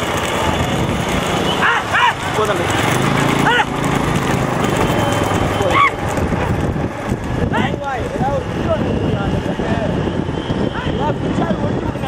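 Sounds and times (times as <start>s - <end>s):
hooves clattering on asphalt: 0.0s - 8.3s
drivers shouting: 0.0s - 12.0s.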